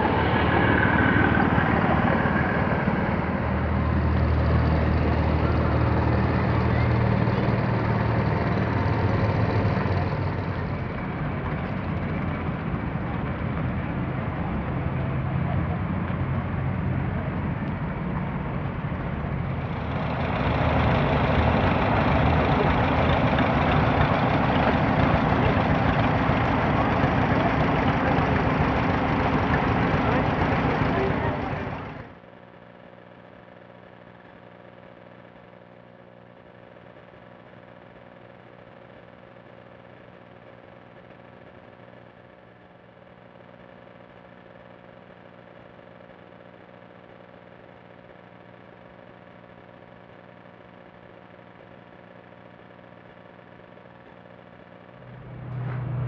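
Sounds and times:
people talking: 0:00.0 - 0:32.1
engine running under load: 0:00.0 - 0:32.2, 0:54.9 - 0:56.0
tractor engines running: 0:00.0 - 0:32.2, 0:55.0 - 0:56.0
low hum: 0:00.0 - 0:56.0.

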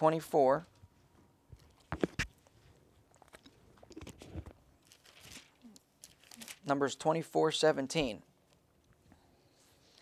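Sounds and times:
pages rustling being turned: 0:04.4 - 0:06.7.

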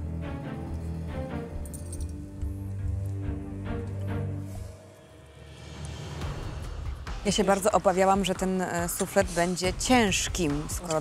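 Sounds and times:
sustained background music: 0:00.0 - 0:11.0.

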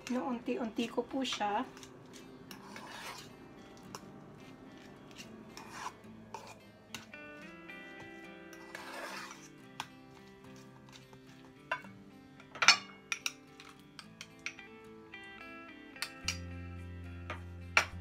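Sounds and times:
background music: 0:00.0 - 0:18.0
metal spoon scraping bowl: 0:01.4 - 0:07.2, 0:08.2 - 0:11.9.

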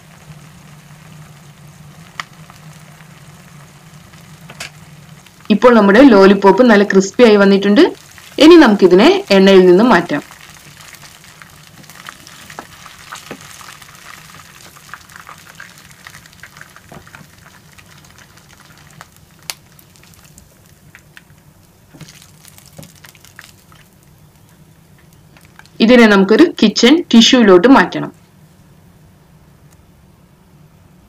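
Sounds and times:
food sizzling in hot oil: 0:00.0 - 0:26.5.

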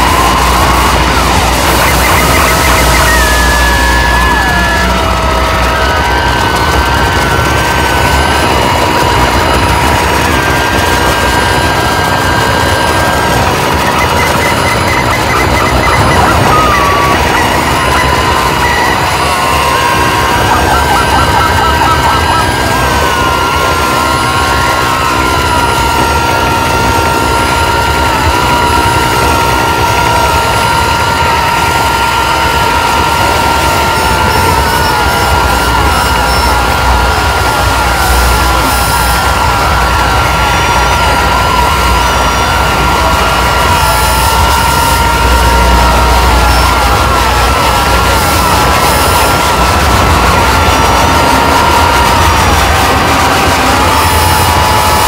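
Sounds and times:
harsh noise wall: 0:00.0 - 0:55.0
high wobbling held tones: 0:00.0 - 0:55.0.

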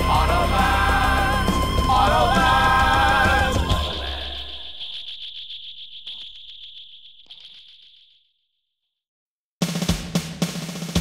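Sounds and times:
fast rattling pulse: 0:00.0 - 0:08.4
high ringing tone: 0:01.3 - 0:08.3.

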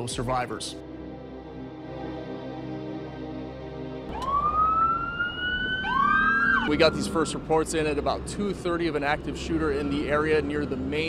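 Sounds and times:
second siren rising: 0:04.1 - 0:07.6, 0:09.5 - 0:11.0
emergency siren wailing: 0:04.1 - 0:08.0, 0:09.4 - 0:11.0
low traffic rumble: 0:04.1 - 0:11.0.

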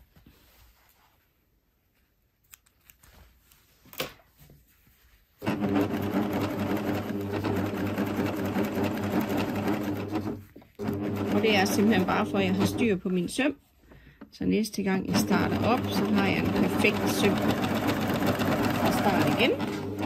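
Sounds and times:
sewing machine running: 0:05.4 - 0:13.0, 0:15.0 - 0:20.0.

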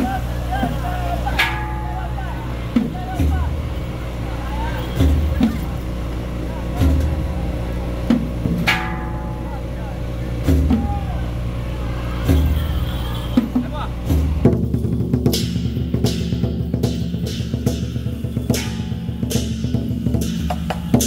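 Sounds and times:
crowd chatter: 0:00.0 - 0:14.5
drum beating slowly: 0:00.0 - 0:21.0
low engine hum: 0:00.0 - 0:21.0
sharp ringing strike: 0:01.3 - 0:02.4, 0:08.6 - 0:09.9, 0:16.2 - 0:20.4.

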